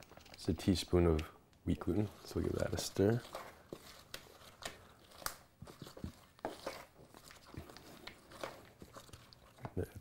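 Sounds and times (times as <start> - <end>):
wooden spoon scraping a bowl: 1.7 - 10.0.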